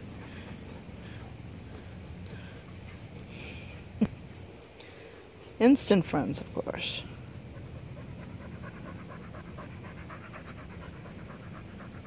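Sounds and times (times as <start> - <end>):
dog panting: 0.0 - 3.9, 6.8 - 12.0.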